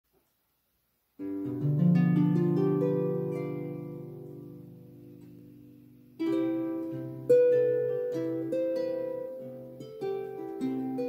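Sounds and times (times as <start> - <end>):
harp plucked low notes: 1.2 - 11.0.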